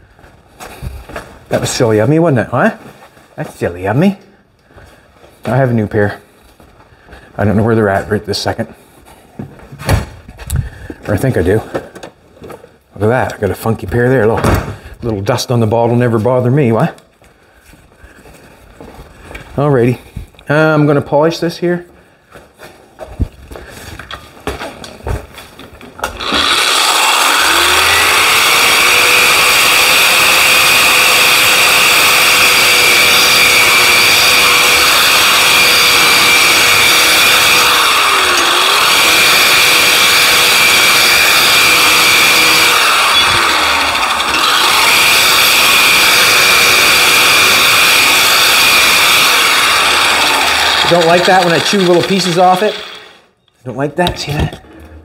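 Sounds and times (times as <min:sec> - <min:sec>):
electric drum sander: 0:26.0 - 0:53.2.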